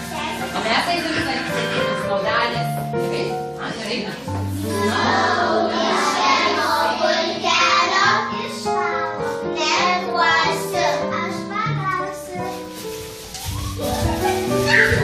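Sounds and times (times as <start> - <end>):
children singing: 4.5 - 11.1.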